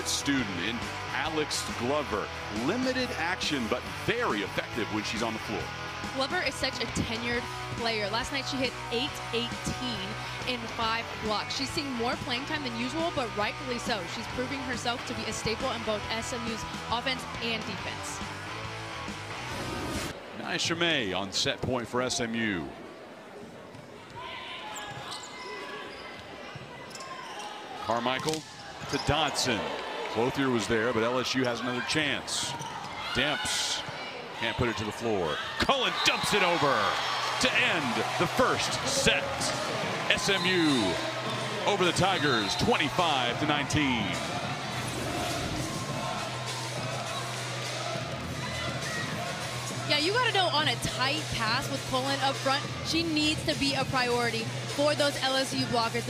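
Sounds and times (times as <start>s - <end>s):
crowd din: 27.7s - 56.0s
crowd shouts: 28.6s - 50.3s.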